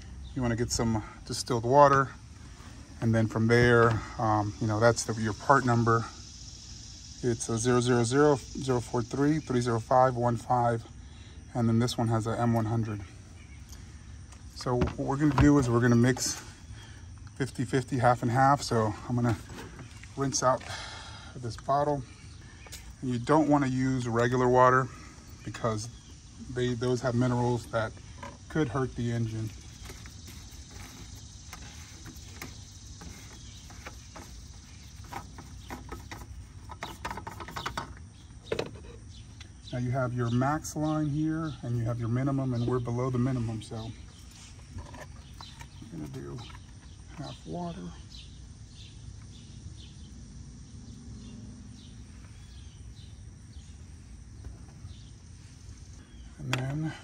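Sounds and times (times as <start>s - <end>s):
low outdoor background: 0.0s - 57.0s
small bird chirping: 12.4s - 20.8s, 21.4s - 57.0s.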